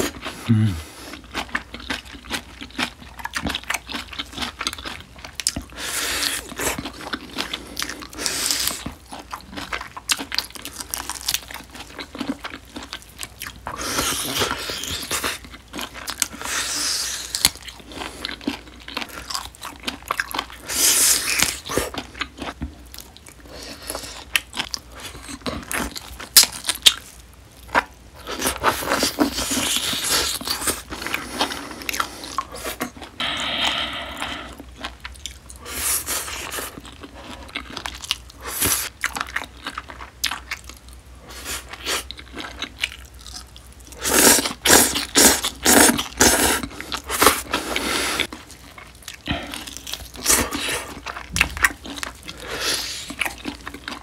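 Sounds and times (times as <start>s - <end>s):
chewing and biting meat: 0.0s - 33.2s, 34.2s - 54.0s
crunching and slurping salad: 0.0s - 54.0s.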